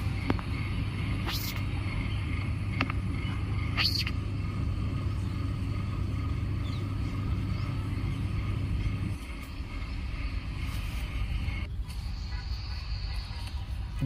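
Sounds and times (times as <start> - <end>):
pump motor rumble and hum: 0.0 - 11.7.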